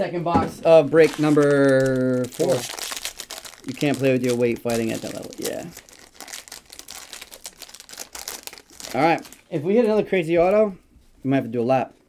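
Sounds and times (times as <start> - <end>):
foil wrapper crinkling: 0.8 - 9.5.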